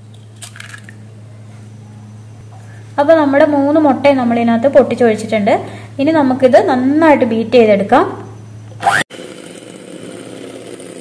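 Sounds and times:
electric hand mixer whisking eggs: 8.8 - 11.0.

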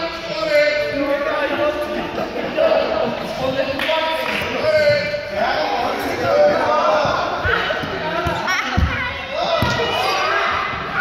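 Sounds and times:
students talking and calling out: 0.0 - 11.0.

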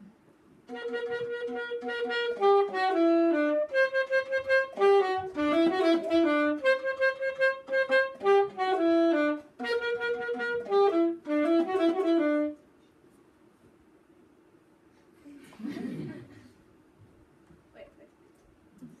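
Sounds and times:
solo saxophone melody: 0.7 - 12.6.

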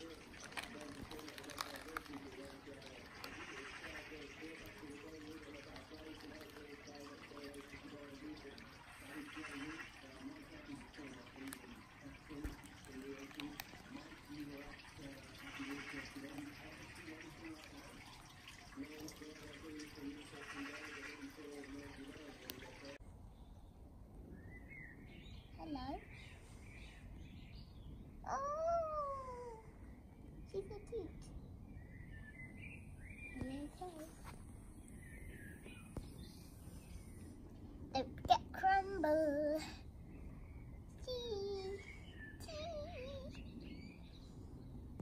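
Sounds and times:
faint indistinct talking: 0.0 - 23.0, 28.2 - 31.4, 33.3 - 34.4, 41.0 - 43.6.

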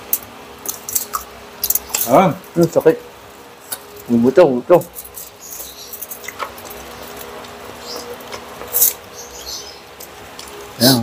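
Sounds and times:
crispy pork crackling: 0.0 - 11.0
crunchy foil rustle: 3.6 - 9.3
chewing: 5.0 - 9.0.

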